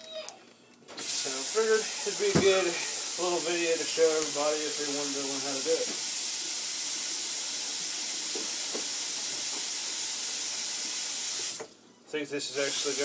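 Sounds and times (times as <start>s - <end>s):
kitchen faucet running: 1.0s - 11.7s, 12.5s - 13.0s.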